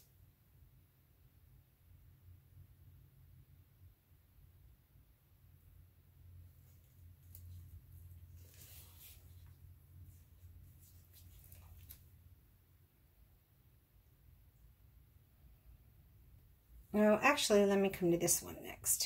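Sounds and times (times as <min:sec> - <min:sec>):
low steady hum: 0:00.0 - 0:19.0
scuffs and rustles of gloved hands: 0:06.6 - 0:12.1.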